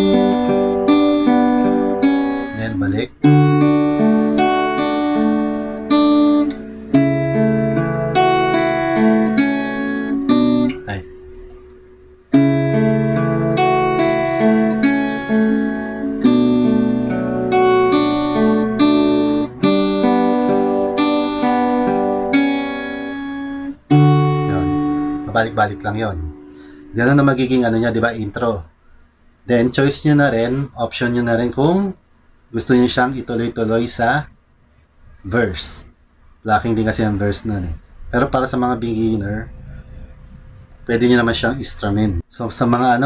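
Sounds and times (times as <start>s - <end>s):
fingerpicked acoustic guitar: 0.0s - 28.2s.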